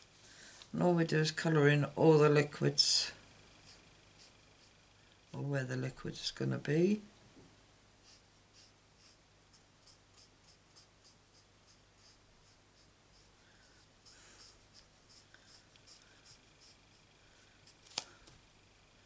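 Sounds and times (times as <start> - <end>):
marker scratching on card: 3.6 - 4.8, 8.0 - 17.9.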